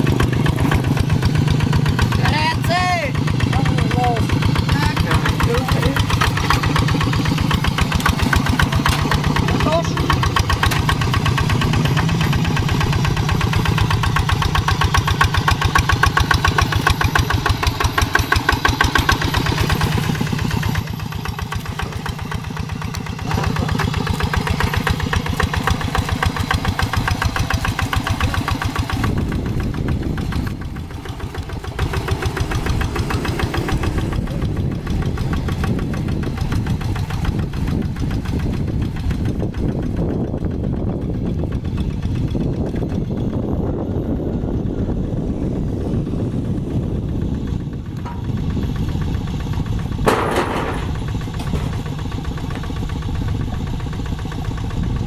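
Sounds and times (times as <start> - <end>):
diesel tractor engine chugging: 0.0 - 55.0.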